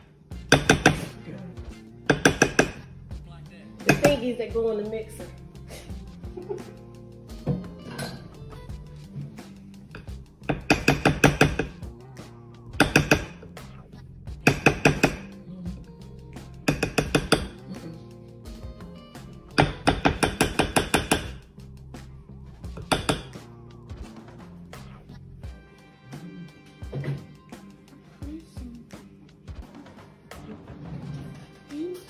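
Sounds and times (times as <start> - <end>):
music playing: 0.0 - 32.0.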